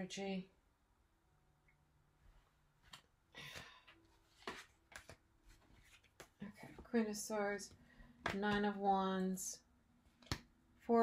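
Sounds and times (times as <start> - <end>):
cards sliding and tapping on table: 4.3 - 6.4.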